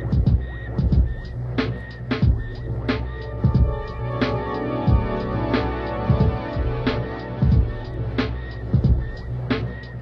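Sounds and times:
deep electronic pulse: 0.0s - 10.0s
low electronic drone: 0.0s - 10.0s.

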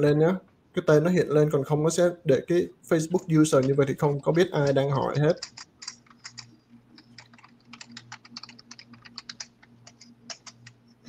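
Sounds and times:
low steady hum: 0.0s - 11.0s
computer keyboard clicks: 3.6s - 10.8s.

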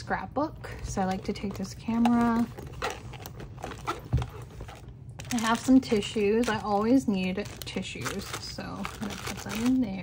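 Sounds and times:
soft handling rustles: 0.6s - 10.0s.

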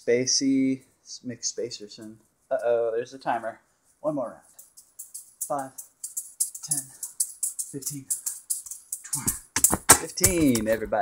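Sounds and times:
juggling balls clicking on catches: 4.6s - 11.0s.

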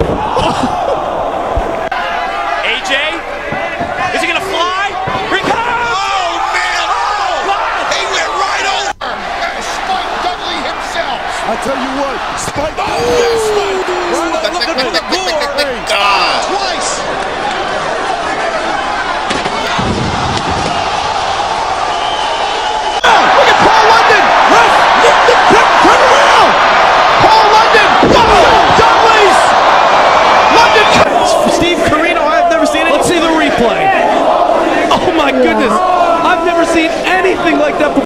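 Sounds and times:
crowd cheering and shouting: 0.0s - 38.0s.

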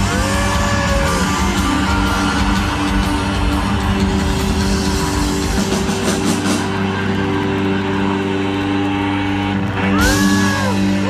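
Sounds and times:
crowd noise: 0.0s - 11.0s
rock band droning chord: 0.0s - 11.0s.

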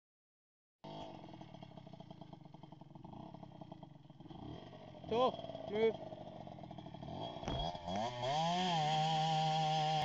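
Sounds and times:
two-stroke dirt bike engine idling: 0.8s - 10.0s.

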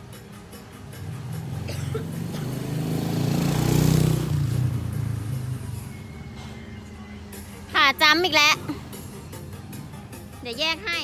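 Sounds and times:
vehicle engine passing by: 0.8s - 6.8s.

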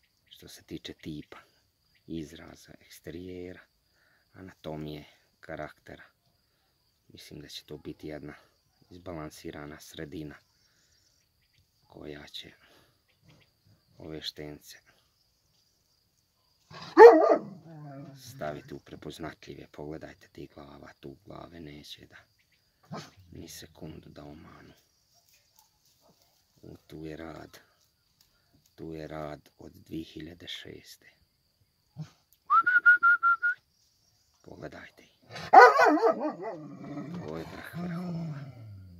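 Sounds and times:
dog barking: 16.7s - 18.7s, 22.9s - 23.2s, 25.2s - 26.4s, 35.3s - 36.9s
person whistling short notes: 32.5s - 33.6s.

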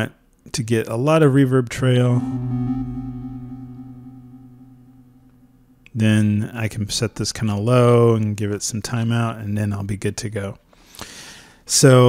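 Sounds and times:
synthesizer tone: 2.0s - 5.9s.

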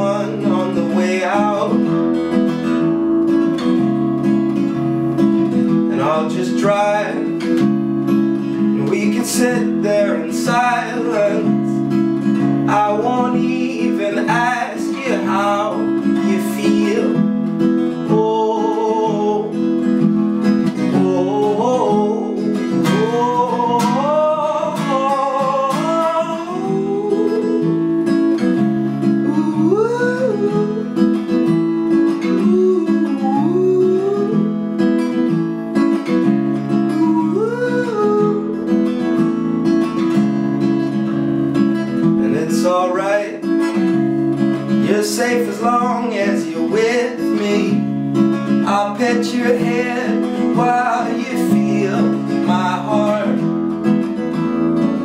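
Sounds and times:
man singing: 0.0s - 2.9s, 3.7s - 40.1s, 40.7s - 55.0s
acoustic guitar strumming chords: 0.0s - 55.0s.

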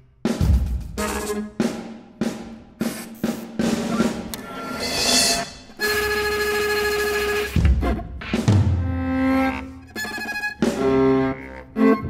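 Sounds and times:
ensemble music with drum kit: 0.0s - 11.6s
drum roll: 0.3s - 6.0s, 6.6s - 9.0s.

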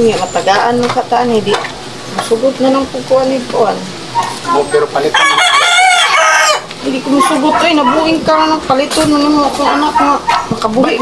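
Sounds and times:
rooster crowing: 5.0s - 8.2s.

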